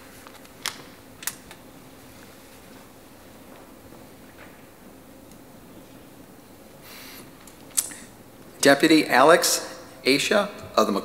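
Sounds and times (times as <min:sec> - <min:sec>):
low steady hum: 0:00.0 - 0:11.0.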